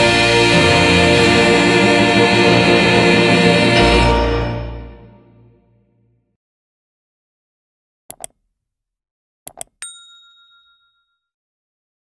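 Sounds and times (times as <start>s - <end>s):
bright bell ding: 9.8s - 11.3s.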